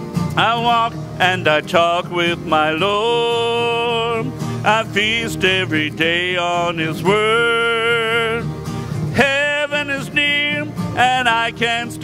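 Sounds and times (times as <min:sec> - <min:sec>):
strummed acoustic guitar: 0:00.0 - 0:12.0
man singing: 0:00.4 - 0:08.5, 0:09.1 - 0:12.0.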